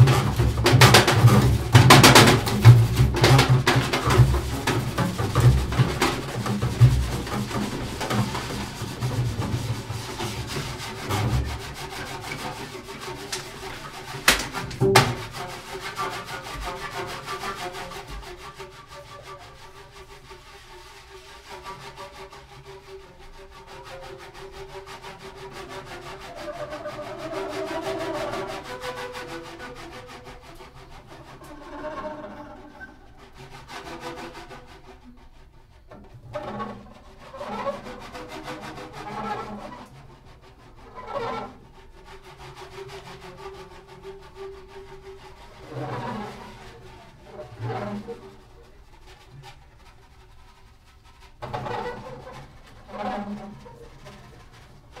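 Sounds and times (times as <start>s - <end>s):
short bowed bass strokes: 0.0s - 22.1s, 23.9s - 55.0s
scraping rubbing on strings: 0.0s - 55.0s.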